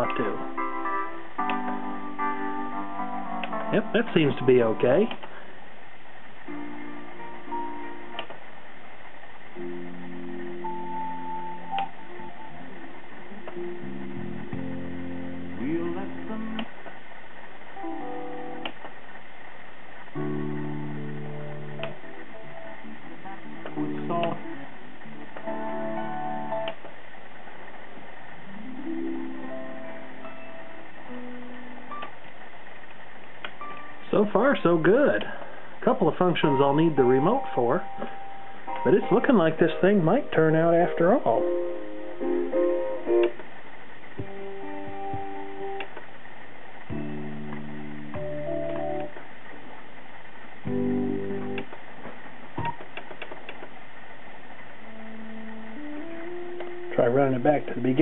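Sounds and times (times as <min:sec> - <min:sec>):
slow held chords through speakers: 0:00.0 - 0:19.1, 0:19.9 - 0:53.6, 0:54.5 - 0:58.0.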